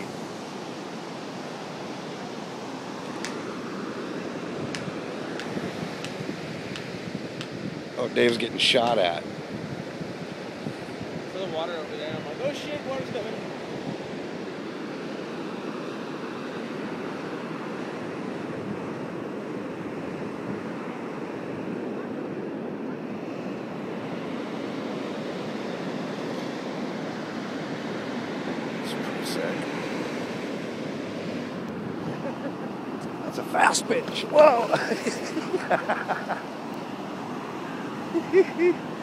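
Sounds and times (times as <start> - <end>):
waves washing on beach: 0.0 - 39.0.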